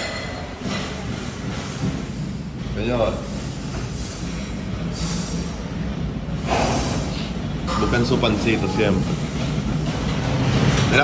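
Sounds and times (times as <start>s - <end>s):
kitchen machinery rumble and hum: 0.0s - 11.0s.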